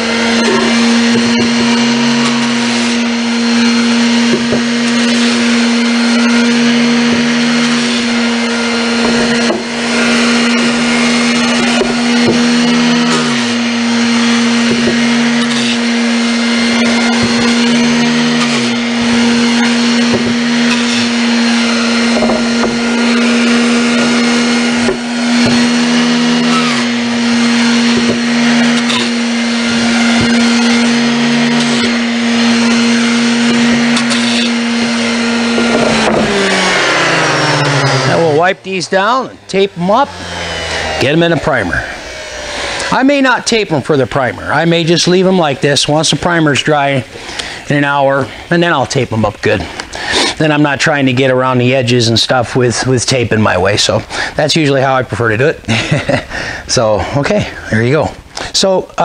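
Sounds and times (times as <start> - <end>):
orbital sander hum: 0.0 - 59.0.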